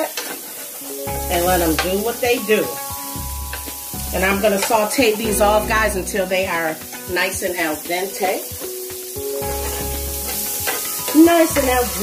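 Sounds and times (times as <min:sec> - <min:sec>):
vegetables sizzling in fat: 0:00.0 - 0:12.0.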